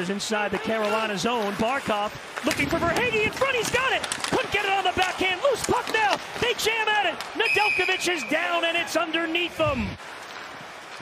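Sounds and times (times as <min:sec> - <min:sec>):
hockey broadcast commentary: 0:00.0 - 0:10.0
sticks and puck clacking: 0:00.5 - 0:08.5
referee's whistle: 0:07.4 - 0:08.5.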